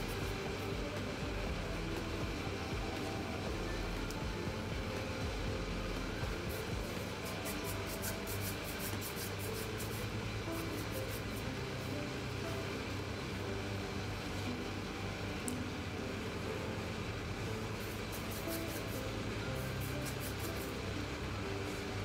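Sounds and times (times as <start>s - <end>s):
faint music: 0.0s - 22.0s.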